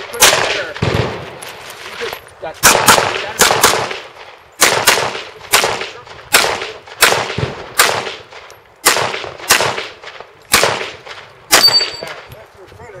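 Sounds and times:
handgun shots with echo: 2.6 - 4.0, 4.6 - 12.2.

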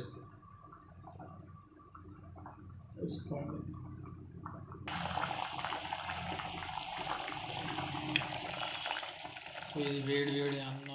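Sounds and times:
curry bubbling in a pot: 0.0 - 10.9.

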